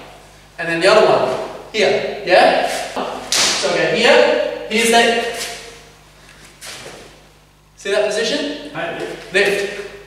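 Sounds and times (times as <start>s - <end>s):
man speaking: 0.6s - 5.6s, 7.8s - 10.0s.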